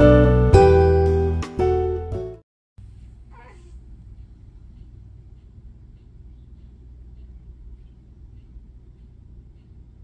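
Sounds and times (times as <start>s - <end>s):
cat meowing in sleep: 3.3s - 3.9s.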